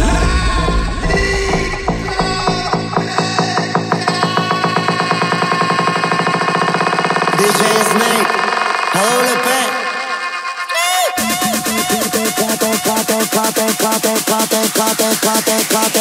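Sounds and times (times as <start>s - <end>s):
deep bass: 0.0s - 6.4s
electronic dance music: 0.0s - 16.0s
pulsing synth note: 0.0s - 16.0s.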